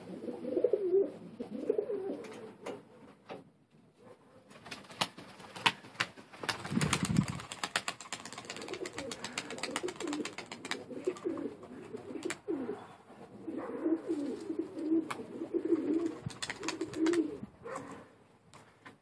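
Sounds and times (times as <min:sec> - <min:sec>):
pigeons cooing: 0:00.0 - 0:02.8, 0:08.0 - 0:18.1.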